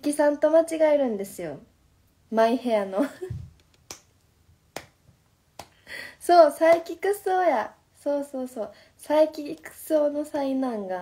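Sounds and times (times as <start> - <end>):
woman laughing: 3.0 - 3.6.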